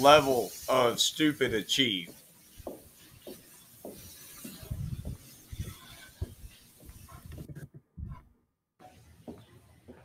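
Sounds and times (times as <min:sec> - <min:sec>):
steady hiss: 0:00.0 - 0:07.4
footsteps on stone paving: 0:01.5 - 0:07.7, 0:09.2 - 0:10.0.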